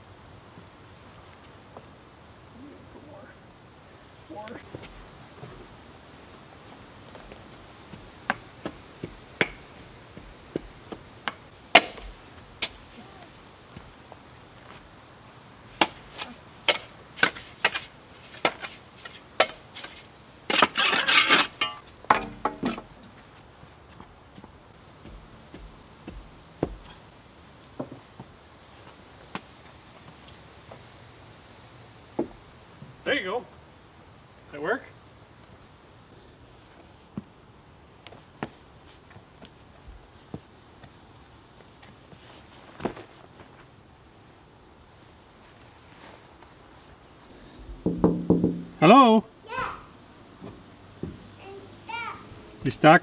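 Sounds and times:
light footsteps on wooden boards: 0:04.5 - 0:05.8, 0:06.6 - 0:13.0, 0:13.6 - 0:15.0, 0:21.8 - 0:30.9, 0:36.7 - 0:37.4, 0:38.0 - 0:43.7, 0:50.4 - 0:51.4
shovel striking dirt and stone: 0:11.7 - 0:12.8, 0:15.8 - 0:22.9
sharp knock: 0:47.6 - 0:48.8.

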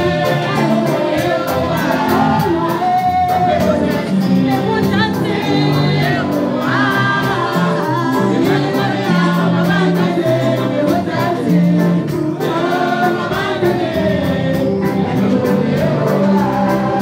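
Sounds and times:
bass guitar: 0:00.0 - 0:17.0
drums: 0:00.0 - 0:17.0
keyboard: 0:00.0 - 0:17.0
singers singing together: 0:00.0 - 0:17.0.

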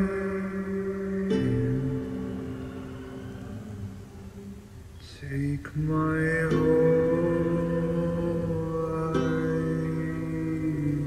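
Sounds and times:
ukulele chord ringing: 0:00.0 - 0:04.7, 0:06.1 - 0:11.0
faint steady hiss: 0:00.0 - 0:11.0
person singing: 0:00.0 - 0:11.0.

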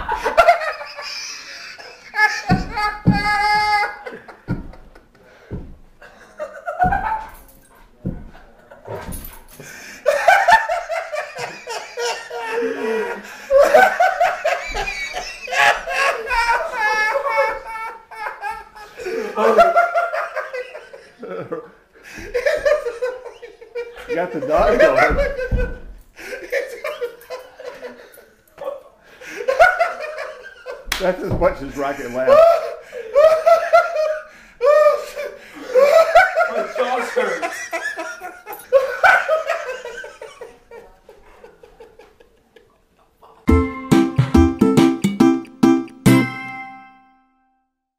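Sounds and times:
man laughing wheezily: 0:00.0 - 0:04.5, 0:11.4 - 0:13.8
man laughing: 0:00.0 - 0:05.2, 0:10.0 - 0:25.6.

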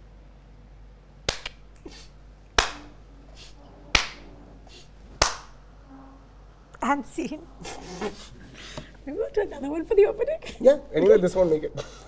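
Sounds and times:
slow hand claps: 0:01.3 - 0:01.6, 0:02.6 - 0:02.9, 0:03.9 - 0:04.2, 0:05.2 - 0:05.6.

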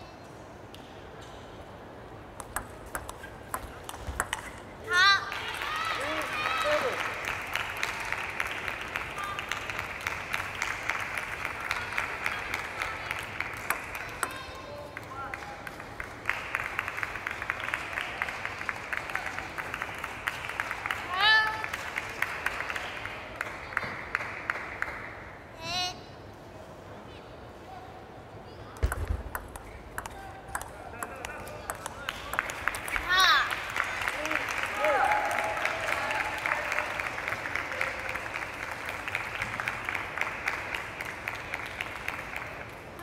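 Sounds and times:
table tennis ball clicking: 0:02.4 - 0:04.6, 0:28.8 - 0:32.5
spectators clapping: 0:02.4 - 0:25.3, 0:28.8 - 0:43.0
loud high shout: 0:04.9 - 0:07.1, 0:34.2 - 0:36.9.

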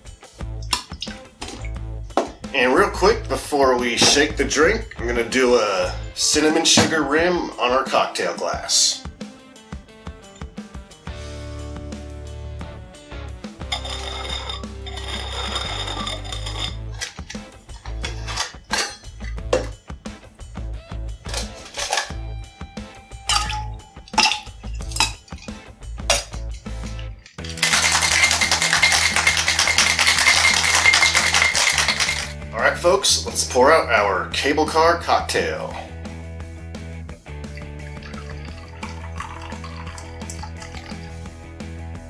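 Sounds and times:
background music: 0:00.0 - 0:42.0
ice cubes clinking into metal tin: 0:03.8 - 0:04.4, 0:13.7 - 0:19.8, 0:21.2 - 0:22.3, 0:23.2 - 0:32.4, 0:38.0 - 0:41.2
ice rattling in shaker: 0:13.6 - 0:19.4, 0:21.2 - 0:22.2, 0:23.3 - 0:32.4, 0:37.6 - 0:41.2.

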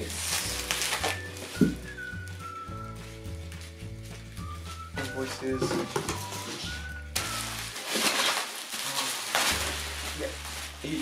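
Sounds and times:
bubble wrap crinkling: 0:00.0 - 0:11.0
quiet background music: 0:00.0 - 0:11.0.

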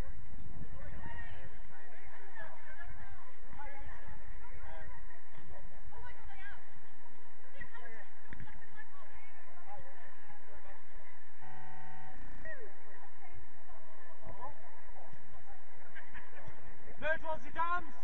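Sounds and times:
short horn-like tone: 0:11.4 - 0:12.4
players calling and shouting: 0:14.2 - 0:18.0.

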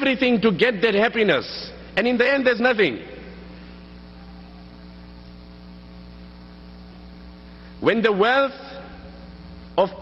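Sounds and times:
man's voice: 0:00.0 - 0:03.3, 0:07.8 - 0:09.2, 0:09.8 - 0:10.0
electrical mains hum: 0:00.0 - 0:10.0.

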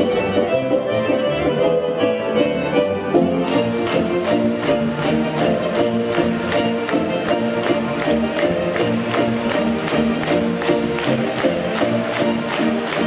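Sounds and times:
folk dance music: 0:00.0 - 0:13.0
sharp hand claps: 0:03.4 - 0:13.0.

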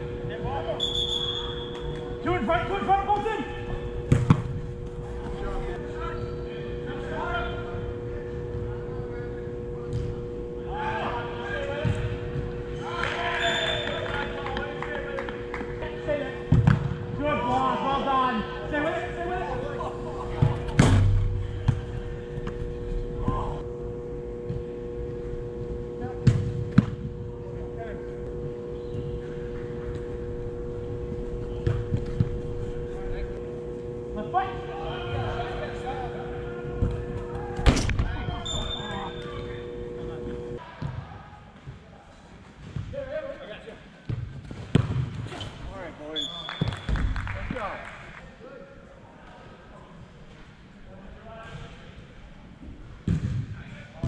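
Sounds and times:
steady hall hum: 0:00.0 - 0:54.0.

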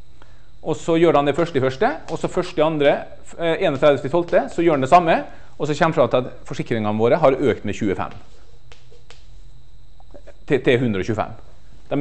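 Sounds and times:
room hum: 0:00.0 - 0:12.0
chalk tapping on blackboard: 0:08.2 - 0:09.4.

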